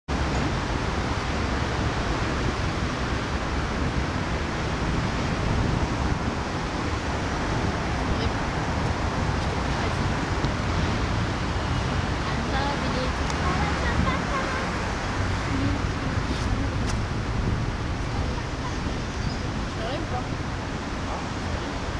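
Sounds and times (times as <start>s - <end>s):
wind buffeting microphone: 0.1s - 21.9s.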